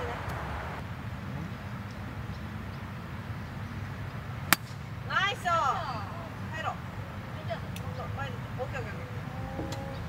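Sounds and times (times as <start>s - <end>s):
faint outdoor background: 0.0s - 10.0s
golf club striking ball: 4.5s - 4.9s.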